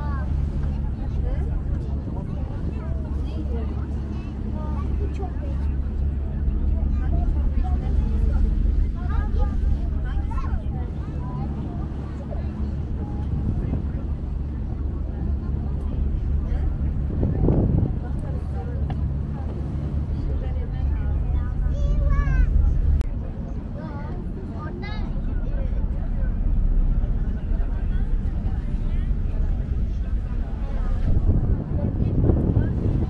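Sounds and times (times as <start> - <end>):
ferry engine low drone: 0.0 - 33.0
people talking indistinctly: 0.0 - 33.0.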